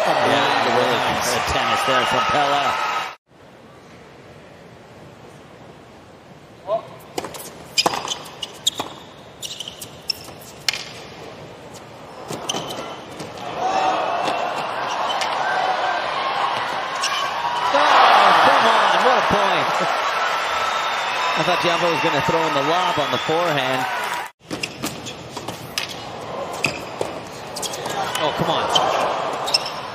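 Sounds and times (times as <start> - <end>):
stadium crowd noise: 0.0 - 3.2, 11.9 - 24.4, 25.7 - 29.9.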